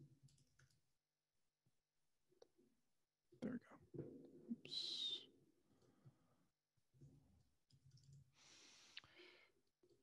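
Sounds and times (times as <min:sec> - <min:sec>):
faint keyboard clicks: 0:00.2 - 0:00.8, 0:07.4 - 0:08.3.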